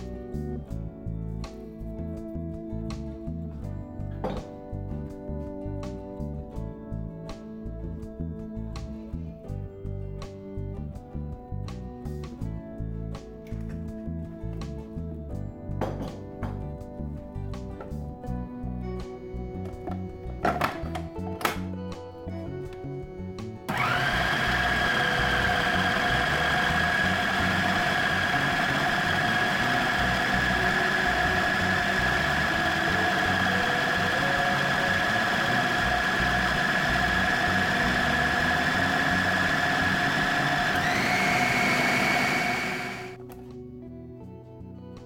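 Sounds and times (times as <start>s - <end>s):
food processor motor whine: 23.7s - 43.2s.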